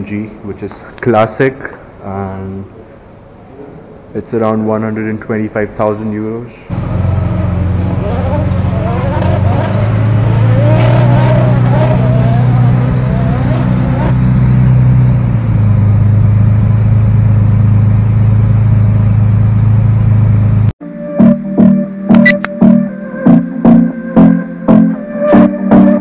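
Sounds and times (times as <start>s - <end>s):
car engine idling: 6.7s - 20.7s.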